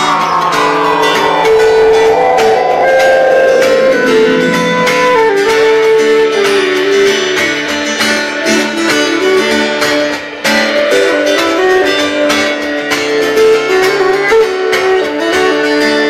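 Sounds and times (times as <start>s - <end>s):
tone sliding downward in pitch: 0.0s - 5.8s
space-rock band playing live: 0.0s - 6.0s.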